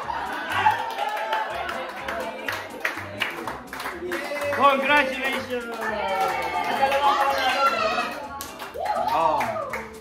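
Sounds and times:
hand claps: 0.0 - 10.0.

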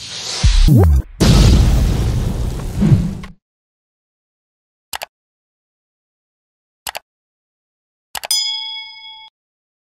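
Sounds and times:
bright bell-like ding: 8.3 - 9.3.

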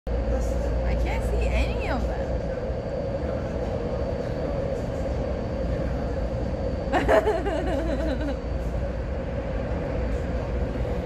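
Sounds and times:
metro train rumble: 0.1 - 11.0
steady hum: 0.1 - 11.0.

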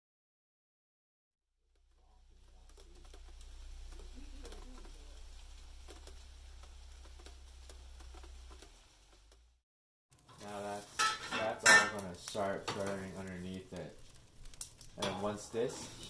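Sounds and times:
faint rain pattering: 1.6 - 16.0
low steady hum: 1.7 - 9.6.

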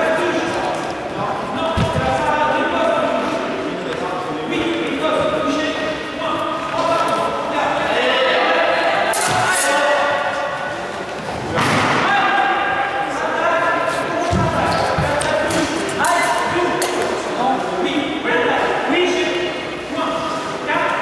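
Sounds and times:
voices echoing in a hall: 0.0 - 21.0.

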